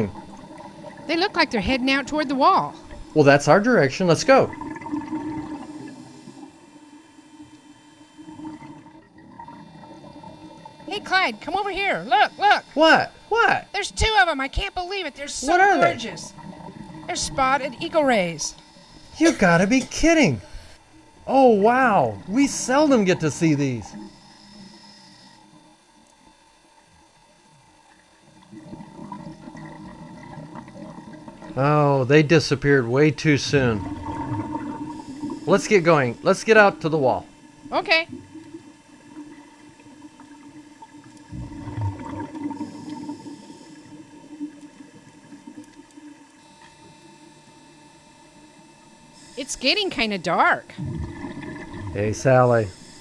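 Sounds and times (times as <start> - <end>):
underwater hum: 0.0 - 53.0
faint watery rush: 50.8 - 53.0.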